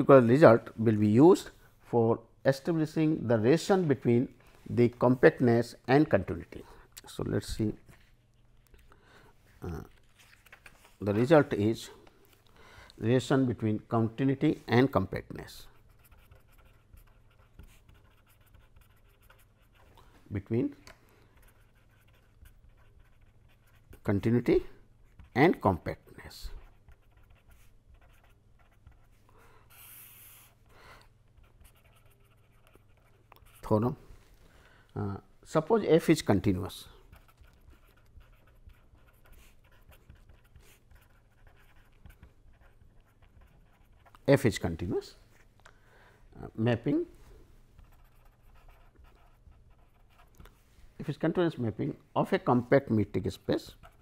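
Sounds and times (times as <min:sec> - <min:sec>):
pen scratching on paper: 0:15.6 - 0:19.9, 0:21.4 - 0:24.1, 0:26.5 - 0:30.6, 0:31.3 - 0:33.8, 0:36.6 - 0:44.2, 0:47.8 - 0:50.4, 0:53.4 - 0:54.0.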